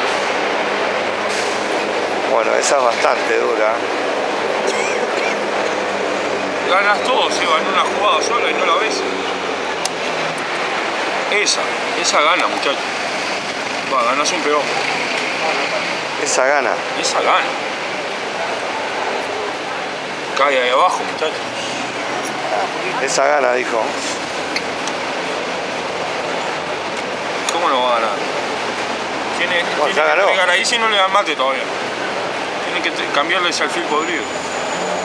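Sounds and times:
street traffic rushing: 0.0s - 35.0s.

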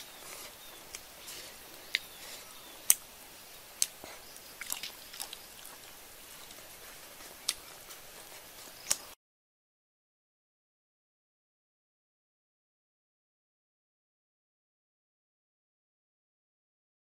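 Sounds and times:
person chewing: 3.8s - 9.2s.

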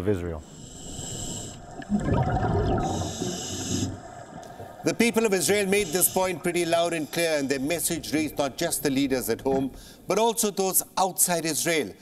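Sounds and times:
diver breathing through regulator: 0.4s - 1.9s, 2.8s - 4.7s, 5.6s - 7.8s
bubbling exhaust rumble: 1.8s - 3.0s.

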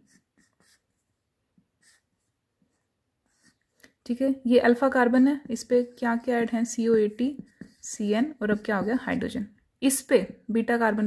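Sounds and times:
marker pen scratching on paper: 0.0s - 3.8s, 4.5s - 9.4s.

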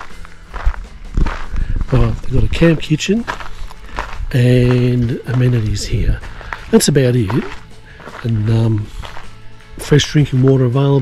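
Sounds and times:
footsteps on ground: 0.0s - 11.0s.

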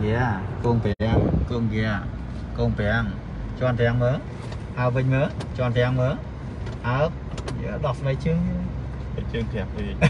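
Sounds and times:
car engine rumble: 0.0s - 10.0s
road noise inside car: 0.0s - 10.0s.

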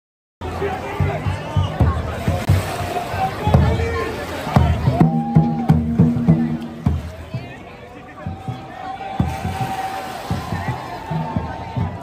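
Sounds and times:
crowd voices: 0.4s - 12.0s
drum beaten in steady rhythm: 0.4s - 12.0s.

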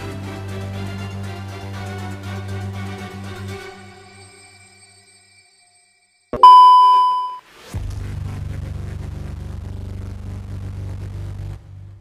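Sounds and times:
ringing electronic beep: 6.4s - 7.4s.

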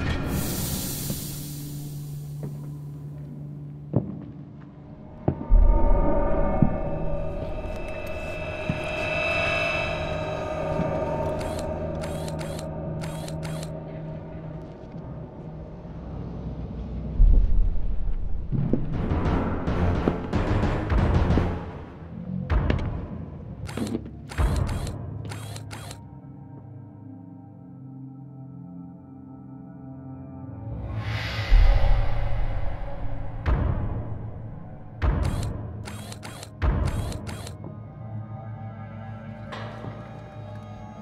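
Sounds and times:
held ambient music tones: 0.0s - 41.0s
low music drone: 0.0s - 41.0s
synthesized drone: 4.9s - 17.0s
shutter-like swishes: 7.5s - 13.7s, 23.7s - 26.0s, 35.2s - 37.6s
clicking clattering sound effects: 11.2s - 13.7s, 35.0s - 37.6s.

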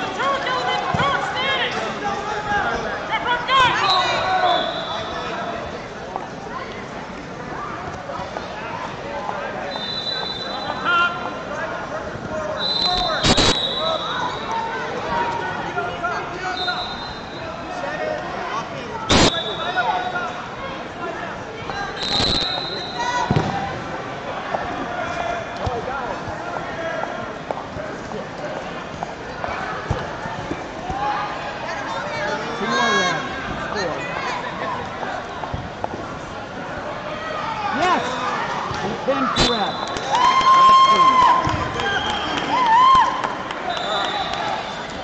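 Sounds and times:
crowd chatter echoing: 0.0s - 45.0s
referee whistle blasts: 3.8s - 5.3s, 9.7s - 10.9s, 12.6s - 14.4s, 16.5s - 17.5s, 19.1s - 20.1s, 22.0s - 23.3s, 39.4s - 40.2s, 43.7s - 44.8s.

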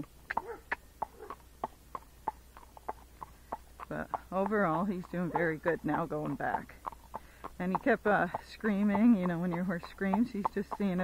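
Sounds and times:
hooves on paved road: 0.0s - 11.0s.

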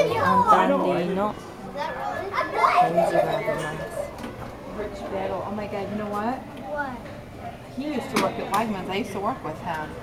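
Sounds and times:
people and children talking: 0.0s - 10.0s.

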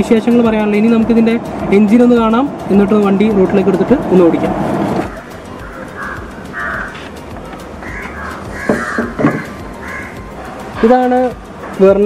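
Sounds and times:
bird calling: 4.6s - 11.8s.

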